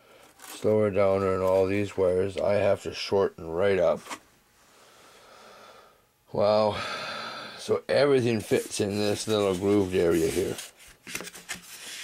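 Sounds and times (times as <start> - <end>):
faint breathing: 4.6 - 6.1, 6.7 - 7.7.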